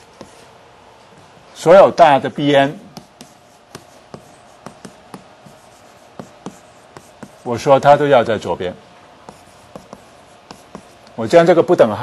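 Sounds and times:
chalk tapping on blackboard: 0.0 - 0.5, 2.9 - 7.7, 9.2 - 11.2.

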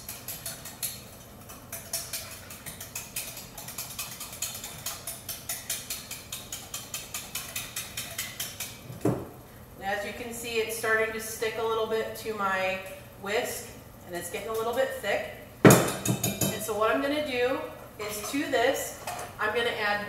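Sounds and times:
whisk clicking against glass bowl: 0.0 - 8.8.

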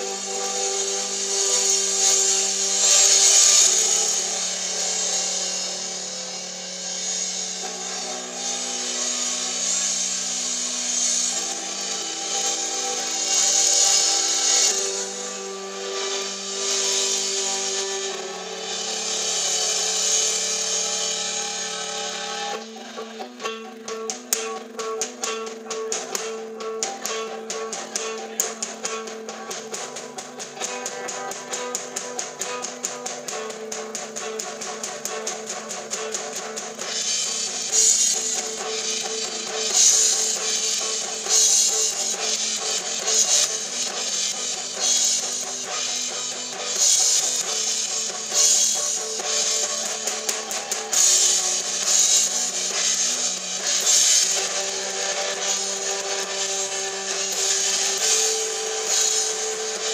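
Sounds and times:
drums: 0.0 - 59.9
electric guitar chords: 0.0 - 59.9.

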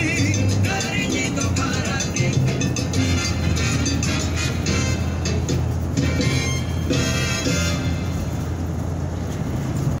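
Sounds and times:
road noise inside moving vehicle: 0.0 - 10.0
truck driving alongside: 0.0 - 10.0.

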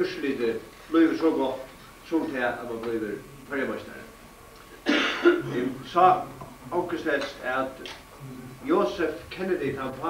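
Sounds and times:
man clearing throat: 4.8 - 5.8
man speaking: 5.4 - 10.0.

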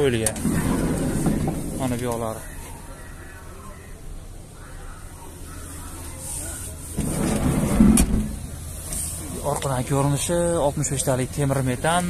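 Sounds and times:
sliding van door closing: 0.3 - 1.9, 6.9 - 9.2.

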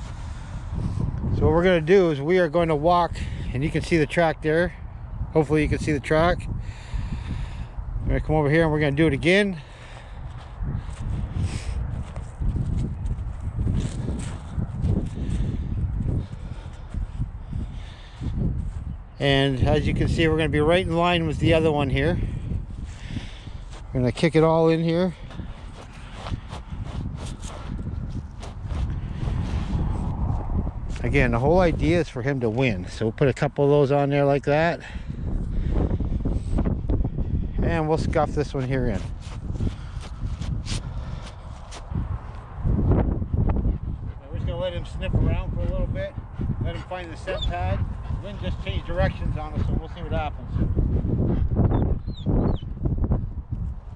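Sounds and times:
wind buffeting microphone: 0.0 - 53.9
footsteps crunching on dry grass: 10.0 - 17.2, 22.7 - 24.0, 24.7 - 31.2, 38.6 - 42.5.

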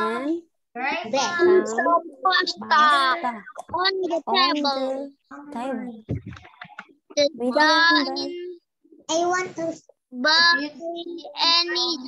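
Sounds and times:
children reading aloud together: 0.0 - 6.0, 7.2 - 12.0
low muffled noise: 0.8 - 12.0.

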